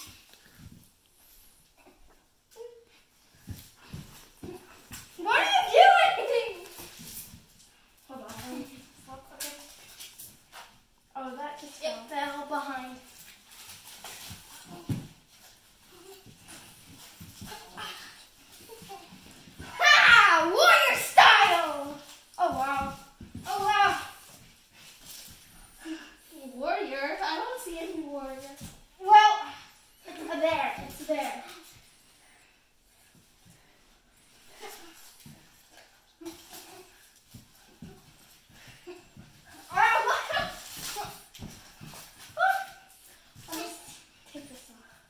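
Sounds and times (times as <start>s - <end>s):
thumps and scuffling: 1.7s - 10.9s, 12.8s - 26.0s, 27.4s - 32.0s, 33.0s - 44.4s.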